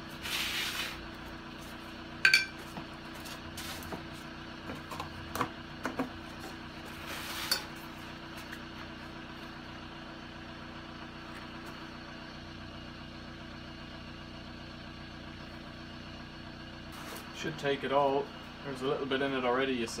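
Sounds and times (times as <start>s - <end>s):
diesel engine idling: 0.0s - 20.0s.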